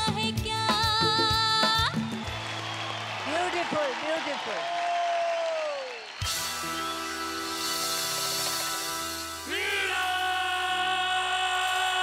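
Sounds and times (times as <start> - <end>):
band backing chord: 6.2 - 12.0.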